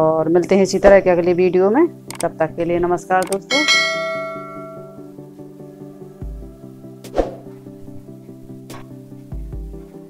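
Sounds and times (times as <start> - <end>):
bright chime ringing: 3.5 - 5.0.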